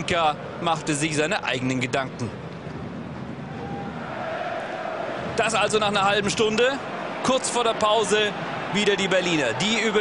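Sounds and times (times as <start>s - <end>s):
crowd hum from stands: 2.0s - 10.0s
faint crowd chanting: 4.0s - 5.3s.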